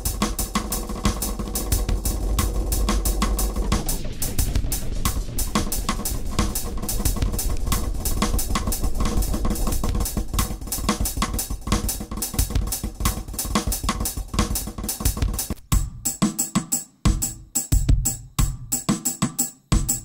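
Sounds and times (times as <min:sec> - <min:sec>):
drum machine beat with echoes: 0:00.0 - 0:20.0.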